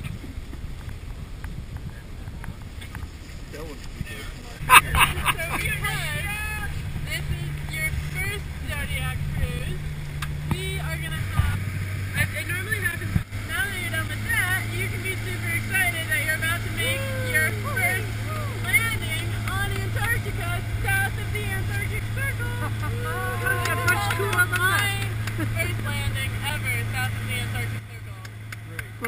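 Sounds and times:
outboard motor running: 0.0 - 29.0
water rushing past: 0.0 - 29.0
voices talking: 3.5 - 29.0.

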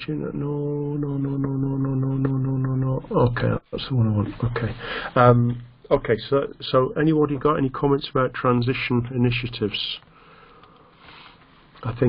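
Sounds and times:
man speaking: 0.0 - 10.0
man breathing into microphone: 4.8 - 5.2, 10.1 - 11.5.

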